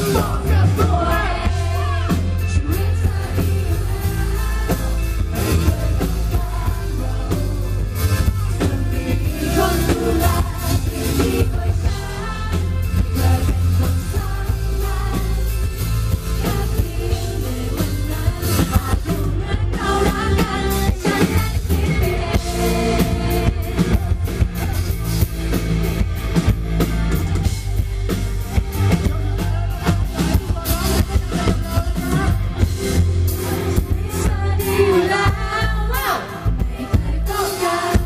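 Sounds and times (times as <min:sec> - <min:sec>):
woman and man singing duet: 0:00.0 - 0:24.5, 0:29.5 - 0:38.0
live band playing pop song: 0:00.0 - 0:38.0.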